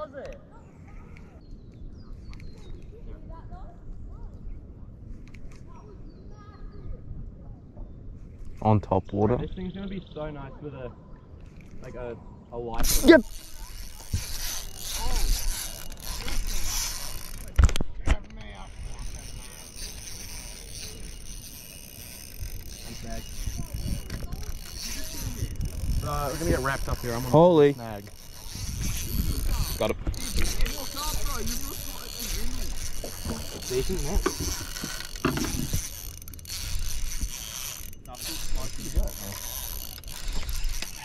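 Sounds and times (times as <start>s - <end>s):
fishing reel clicking: 12.8s - 41.0s.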